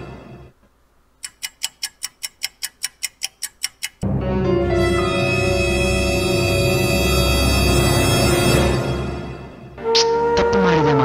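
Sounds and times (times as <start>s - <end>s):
clock ticking: 1.2s - 4.0s.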